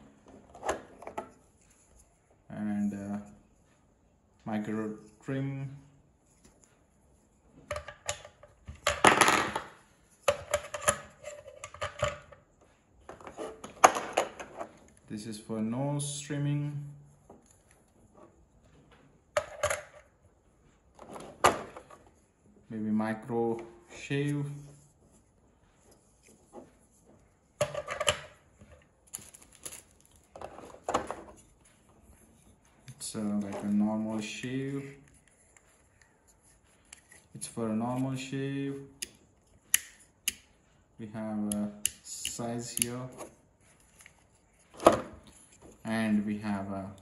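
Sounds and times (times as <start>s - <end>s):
plastic parts clicking and knocking: 7.6s - 12.4s, 27.6s - 31.4s.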